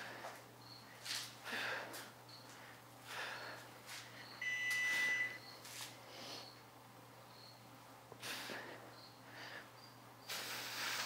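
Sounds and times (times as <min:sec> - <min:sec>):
person breathing hard: 0:00.0 - 0:00.5, 0:01.3 - 0:04.4, 0:08.2 - 0:11.0
high-pitched beep: 0:04.4 - 0:05.5.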